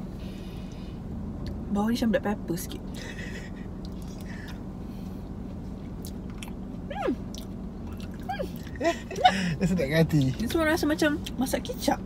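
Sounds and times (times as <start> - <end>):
person chewing food: 3.8 - 4.6, 5.8 - 6.6, 7.2 - 9.2.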